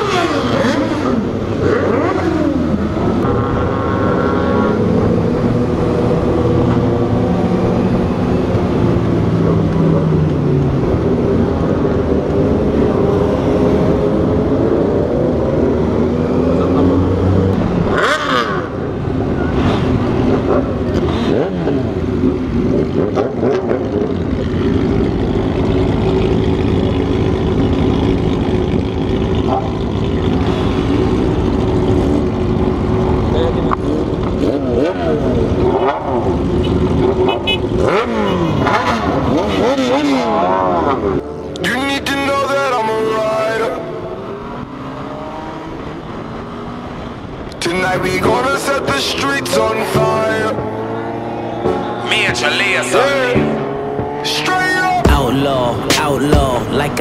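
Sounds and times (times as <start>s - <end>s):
motorcycle cruising: 0.0s - 57.0s
motorcycles idling and revving: 0.0s - 57.0s.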